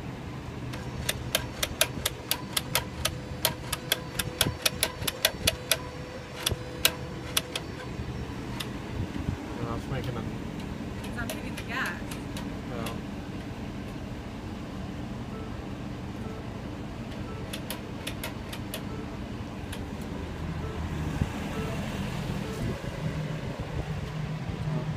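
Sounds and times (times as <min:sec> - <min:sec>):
car engine idling: 0:00.0 - 0:24.9
sharp clicks: 0:00.7 - 0:08.7, 0:10.0 - 0:13.0, 0:17.1 - 0:19.0.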